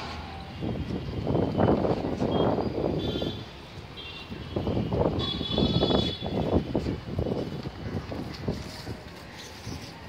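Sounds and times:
wind buffeting microphone: 4.3 - 9.8.

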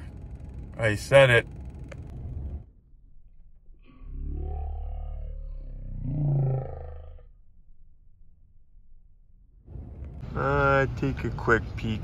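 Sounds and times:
vehicle engine accelerating: 0.0 - 2.7.

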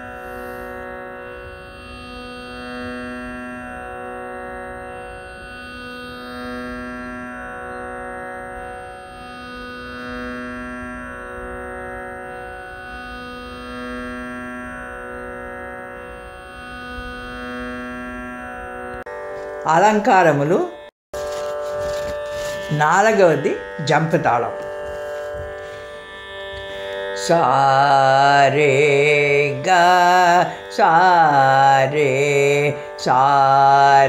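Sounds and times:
steady drone on one pitch: 0.0 - 34.0.

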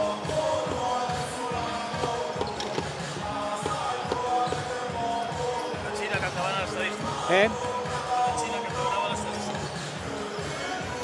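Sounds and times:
music over sound system: 0.0 - 11.0
basketball bouncing on hardwood: 3.6 - 4.8.

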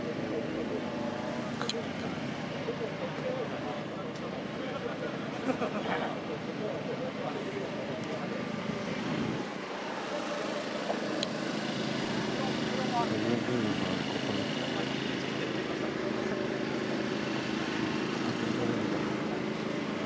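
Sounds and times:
race car engines on track: 0.0 - 20.0.

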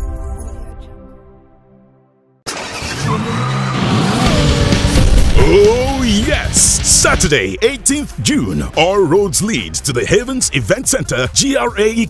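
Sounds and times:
music: 0.0 - 2.5, 3.8 - 12.0
car engine revving: 2.5 - 7.0.

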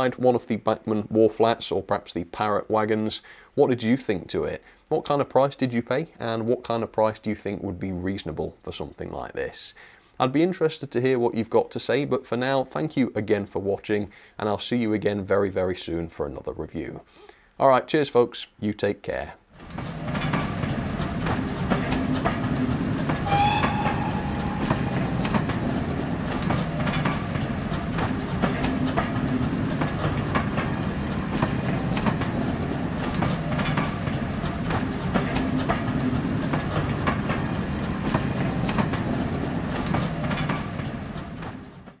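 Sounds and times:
train wheels clicking over rail joints: 19.6 - 42.0
brief high tone: 23.2 - 25.8.

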